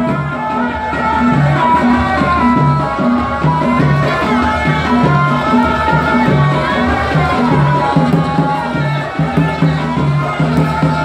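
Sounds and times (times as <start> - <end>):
drums beating a rhythm: 0.0 - 11.0.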